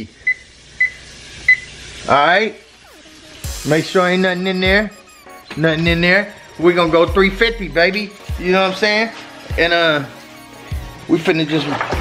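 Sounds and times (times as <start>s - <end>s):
oven keypad beeps: 0.2s - 1.8s, 2.9s - 11.3s.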